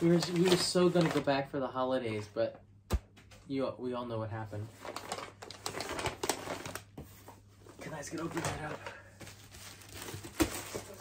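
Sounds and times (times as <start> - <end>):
wrapping paper rustling: 0.0 - 1.4, 4.6 - 11.0.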